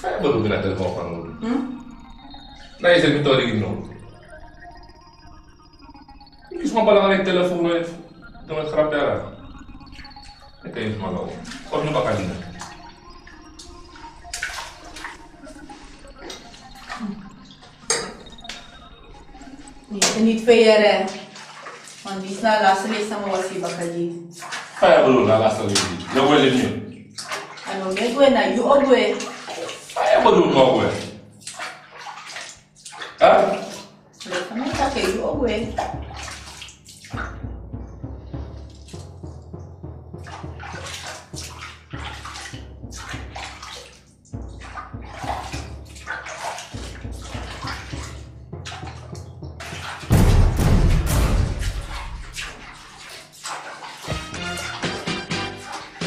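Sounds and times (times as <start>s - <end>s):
dialogue: 0.0s - 5.1s, 19.2s - 26.9s, 27.7s - 29.4s, 34.3s - 36.2s
low background music: 0.0s - 56.0s
water sloshing in a bathtub: 0.0s - 56.0s.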